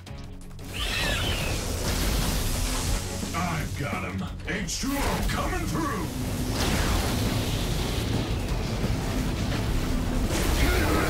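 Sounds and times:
background music: 0:00.0 - 0:11.0
cartoon water jet and beam blasting: 0:05.1 - 0:08.2.

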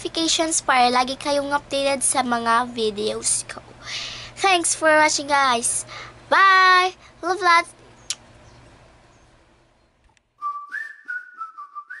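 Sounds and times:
whistled tune: 0:10.4 - 0:12.0.

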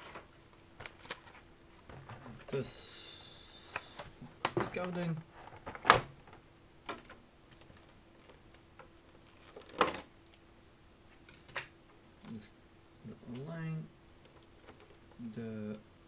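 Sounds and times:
plastic packaging crinkling: 0:09.2 - 0:10.0.

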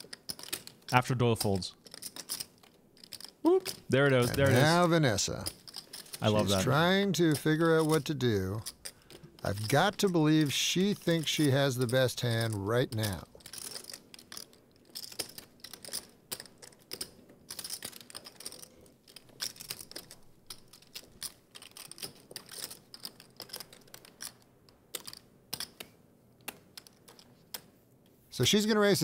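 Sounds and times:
poker chips clicking: 0:00.0 - 0:00.8, 0:01.4 - 0:27.7.

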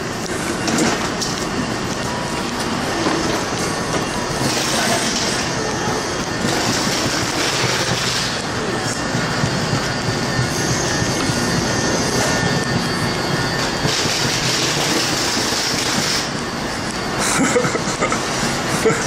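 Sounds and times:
train machinery rumble and hiss: 0:00.0 - 0:19.0.

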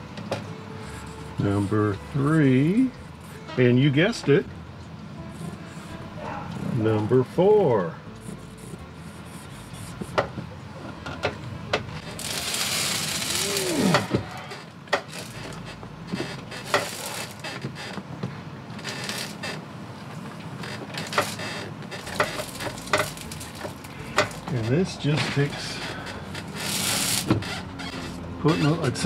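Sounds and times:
rushing hissing noise: 0:12.2 - 0:14.1, 0:26.5 - 0:27.4
knocks and clicks of tools: 0:20.8 - 0:24.6.

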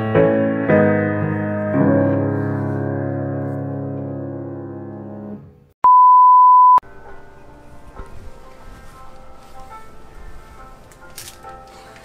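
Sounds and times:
music: 0:00.0 - 0:05.7, 0:06.8 - 0:12.0
loud electronic beep: 0:05.8 - 0:06.8.

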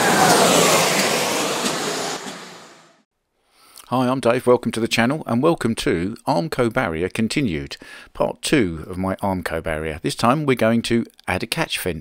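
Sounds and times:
loud rushing whoosh: 0:00.0 - 0:03.1.

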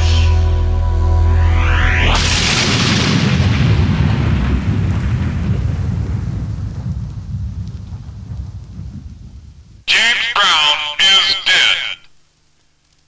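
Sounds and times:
explosion-like burst with deep rumble: 0:02.0 - 0:09.8.

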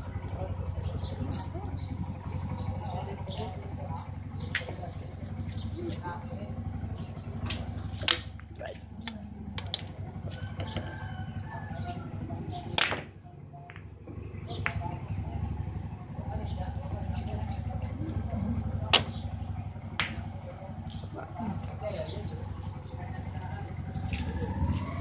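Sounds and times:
low engine hum: 0:00.0 - 0:25.0
sharp clicks and knocks: 0:07.4 - 0:10.0.

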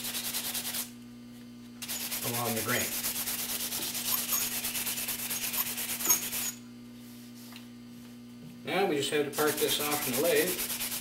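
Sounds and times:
sandpaper rubbing on wood: 0:00.0 - 0:00.9, 0:01.8 - 0:06.6, 0:09.3 - 0:11.0
faint steady hum: 0:00.0 - 0:11.0.

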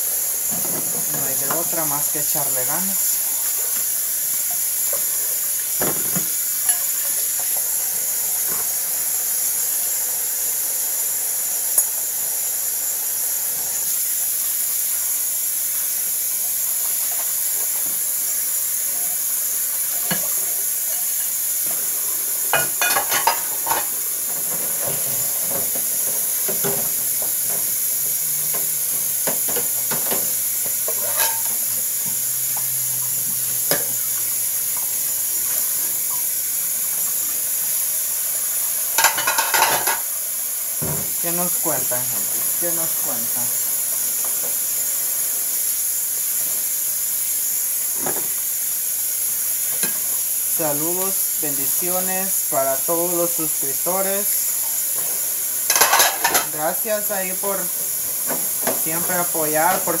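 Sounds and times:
tap running into sink: 0:05.8 - 0:06.8, 0:40.8 - 0:41.2
dishes clinking: 0:22.5 - 0:25.8, 0:28.5 - 0:31.6, 0:39.0 - 0:40.1, 0:55.7 - 0:56.6.

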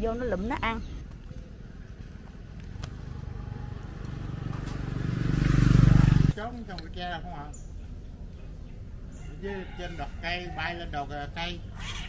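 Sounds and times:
small motorbike engine running: 0:03.0 - 0:06.3.

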